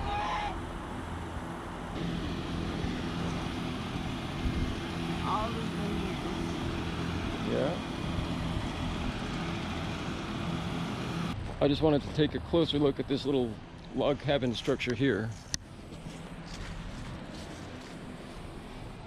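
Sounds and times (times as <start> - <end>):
low outdoor rumble: 0.0 - 19.0.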